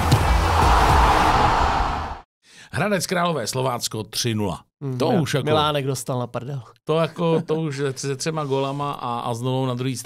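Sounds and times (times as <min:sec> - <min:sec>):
whooshing swell of noise: 0:00.4 - 0:02.2.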